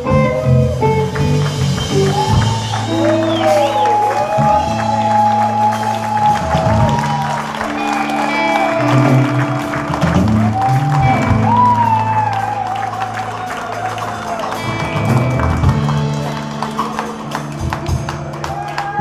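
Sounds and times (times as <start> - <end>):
electric blues band playing: 0.0 - 19.0.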